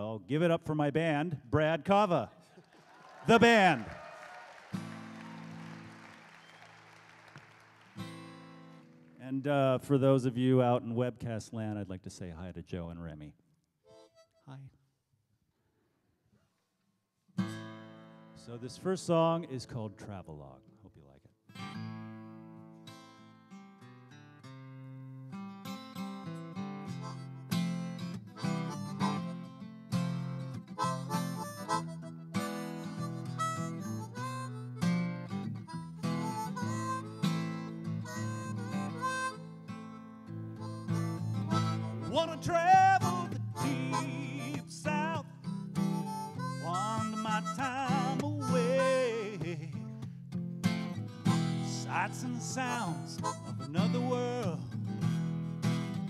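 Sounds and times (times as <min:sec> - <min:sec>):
acoustic guitar strumming: 0:04.7 - 0:06.6, 0:07.8 - 0:09.8, 0:17.4 - 0:18.4, 0:21.5 - 0:56.0
harmonica playing bending phrases: 0:13.8 - 0:14.7, 0:26.8 - 0:50.0, 0:50.8 - 0:56.0.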